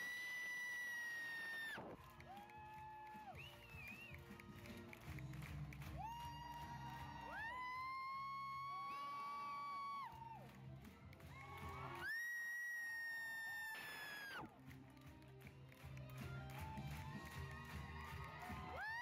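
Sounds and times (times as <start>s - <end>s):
audience cheering: 0.0s - 5.0s, 5.8s - 10.6s, 11.3s - 14.5s, 16.8s - 19.0s.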